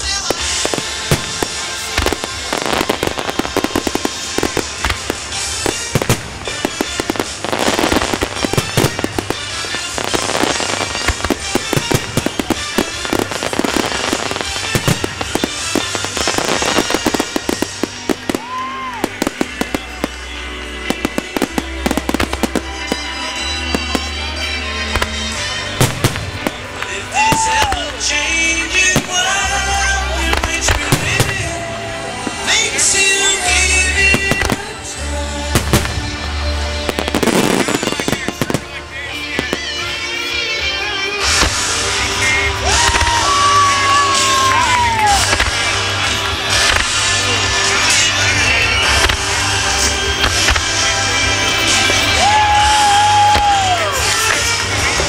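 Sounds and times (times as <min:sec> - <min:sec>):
music soundtrack: 0:00.0 - 0:55.0.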